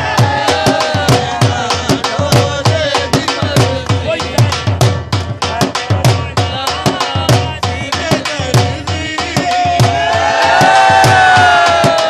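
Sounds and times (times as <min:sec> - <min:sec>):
crowd cheering: 0:00.0 - 0:01.8, 0:09.6 - 0:12.0
dhol drum beating: 0:00.0 - 0:12.0.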